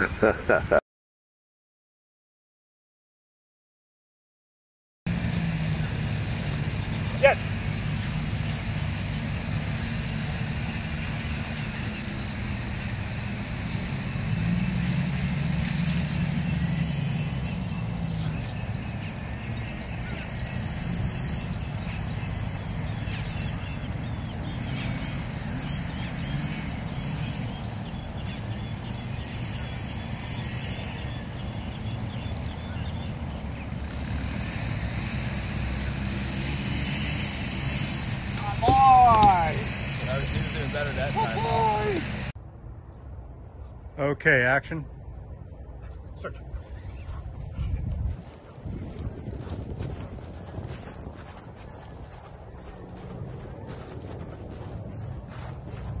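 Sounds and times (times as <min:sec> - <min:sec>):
low engine-like hum: 0:05.1 - 0:44.0, 0:44.9 - 0:56.0
outdoor background noise: 0:05.1 - 0:56.0.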